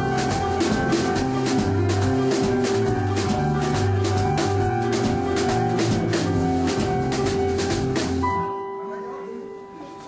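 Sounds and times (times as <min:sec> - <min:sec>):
drum kit beat: 0:00.0 - 0:08.4
sustained keyboard chords: 0:00.0 - 0:10.0.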